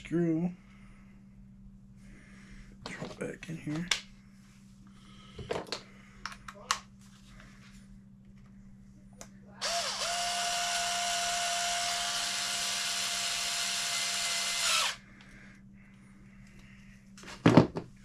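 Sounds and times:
cordless drill driving screw: 0:09.6 - 0:15.0.

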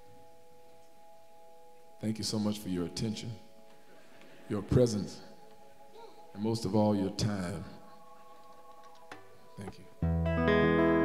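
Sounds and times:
faint sustained keyboard chord: 0:00.0 - 0:11.0.

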